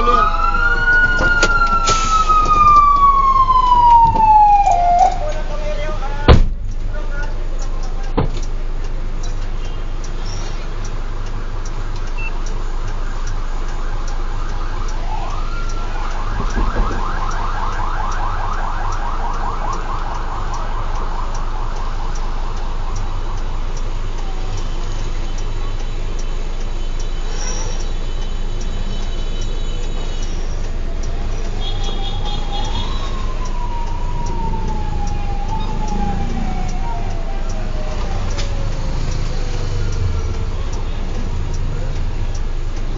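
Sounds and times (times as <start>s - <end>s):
fire truck siren: 0.0s - 6.1s, 12.4s - 42.9s
diesel engine idling: 33.2s - 42.9s.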